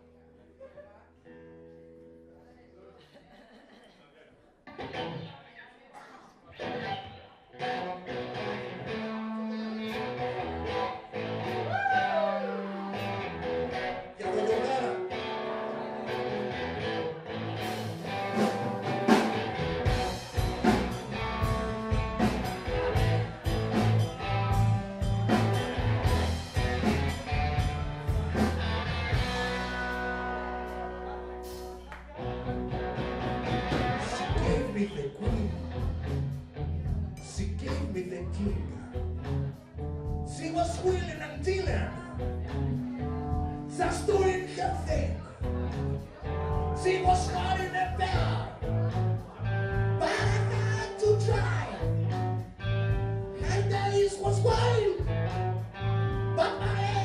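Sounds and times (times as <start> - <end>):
bass guitar: 4.7 - 5.4, 6.5 - 57.0
electric guitar chords: 4.7 - 5.4, 6.5 - 57.0
drums: 17.3 - 57.0.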